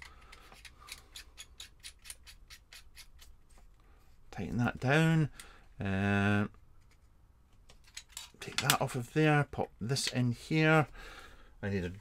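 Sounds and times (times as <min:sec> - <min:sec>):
screw threads clicking and scraping: 0:00.0 - 0:03.6, 0:06.8 - 0:08.8.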